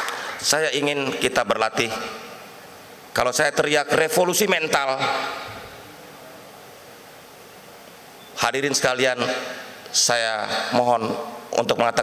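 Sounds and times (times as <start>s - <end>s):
low hiss through sound system: 0.0s - 12.0s
man's amplified voice reverberating: 0.1s - 6.6s, 8.4s - 12.0s.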